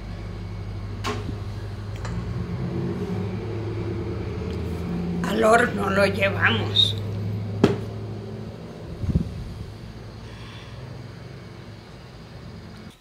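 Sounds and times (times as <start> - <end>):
low steady hum: 0.0 - 13.0
low thump: 7.6 - 8.0.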